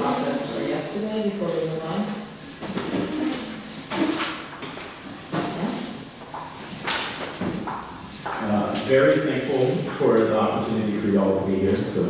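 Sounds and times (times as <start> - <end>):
people moving: 0.0 - 11.0.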